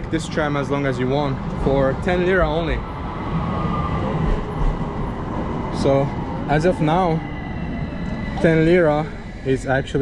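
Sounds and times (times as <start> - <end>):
tram rumbling and whining: 0.0 - 10.0.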